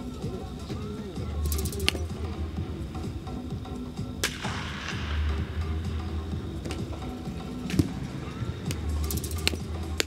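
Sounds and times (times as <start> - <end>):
background music: 0.0 - 10.0
bat cracking a baseball: 1.4 - 2.4, 4.0 - 10.0.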